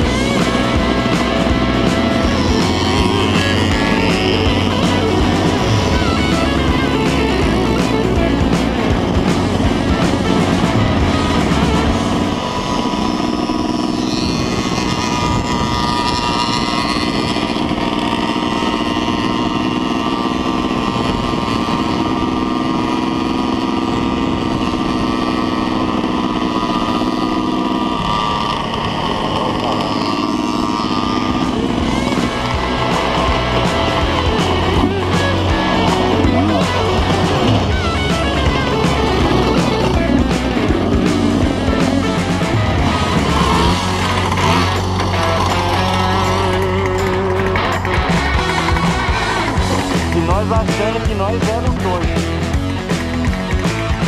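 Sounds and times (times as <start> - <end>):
motorcycle engine running: 0.0 - 54.0
rock music: 0.0 - 54.0.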